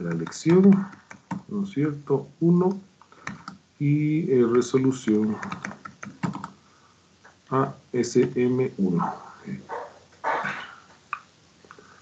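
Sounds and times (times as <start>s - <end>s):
dog barking: 9.0s - 10.7s.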